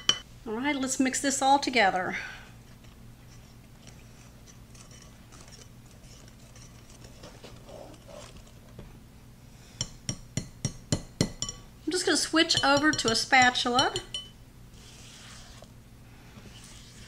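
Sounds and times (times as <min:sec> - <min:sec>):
whisk swishing in batter: 0:03.2 - 0:08.5, 0:14.8 - 0:17.0
whisk clinking against bowl: 0:09.8 - 0:11.7, 0:12.3 - 0:14.4.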